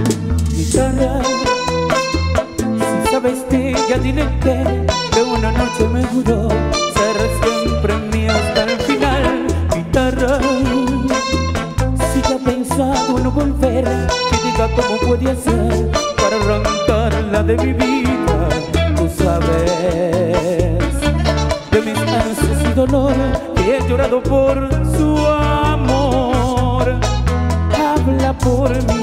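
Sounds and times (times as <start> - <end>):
guitar picking melody: 0.0 - 29.0
man singing: 0.0 - 29.0
pulsing bass line: 0.0 - 29.0.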